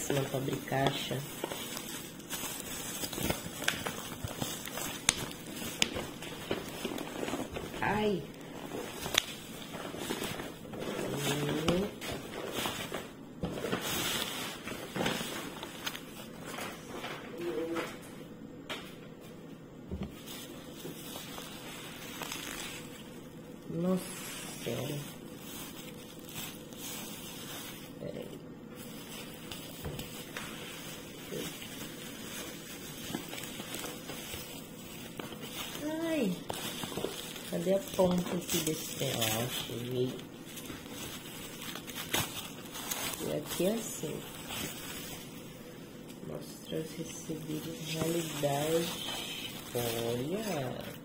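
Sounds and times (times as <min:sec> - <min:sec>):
bubble wrap and paper crinkling: 0:00.0 - 0:18.1, 0:18.9 - 0:51.0.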